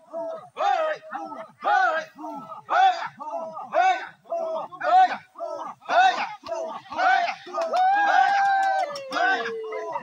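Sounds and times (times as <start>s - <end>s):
crowd chanting in unison: 0.0s - 7.7s.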